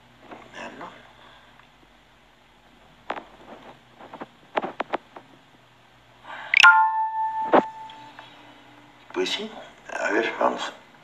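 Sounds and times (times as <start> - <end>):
steady electronic alert tone: 6.6 - 8.0.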